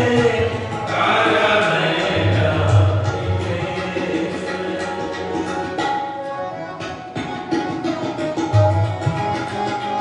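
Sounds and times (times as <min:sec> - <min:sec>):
devotional singing: 0:00.0 - 0:05.2
harmonium chords: 0:00.0 - 0:10.0.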